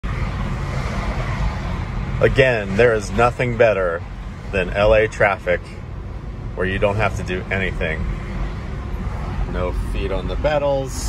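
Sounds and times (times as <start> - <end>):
road and tyre noise in car: 0.0 - 11.0.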